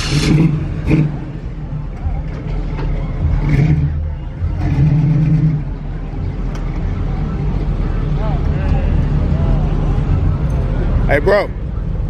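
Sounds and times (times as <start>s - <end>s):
car engine revving: 0.0s - 10.4s
voices: 0.0s - 12.0s.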